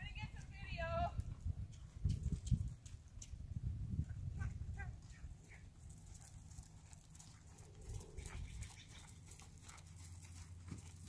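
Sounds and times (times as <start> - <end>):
pony hoofbeats on sand: 4.4 - 11.0.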